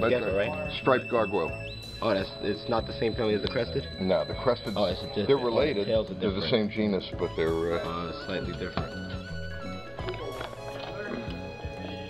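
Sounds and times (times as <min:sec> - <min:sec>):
music with held notes and low beats: 0:00.0 - 0:12.0.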